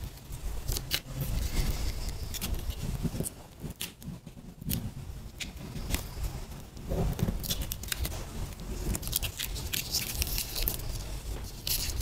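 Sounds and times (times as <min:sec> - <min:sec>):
adhesive backing peeling crackle: 0:00.1 - 0:06.2, 0:07.1 - 0:12.0.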